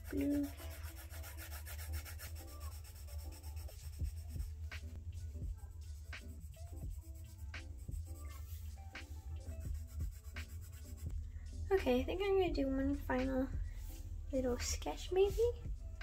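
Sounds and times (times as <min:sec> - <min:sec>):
pencil scratching on paper: 0:00.0 - 0:04.6, 0:09.5 - 0:11.1
quiet background music: 0:00.0 - 0:16.0.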